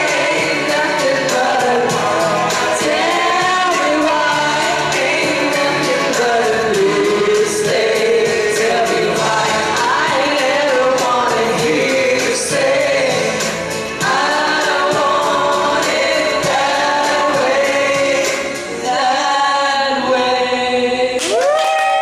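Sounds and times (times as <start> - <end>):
woman singing into microphone: 0.0 - 21.5
backing music with steady beat: 0.0 - 22.0.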